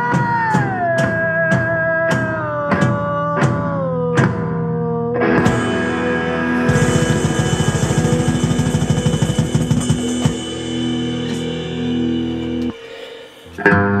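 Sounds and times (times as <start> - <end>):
hard rock music: 0.0 - 14.0
guitar chord ringing: 5.2 - 14.0
drum roll: 5.3 - 13.6
loud hit: 5.4 - 13.6.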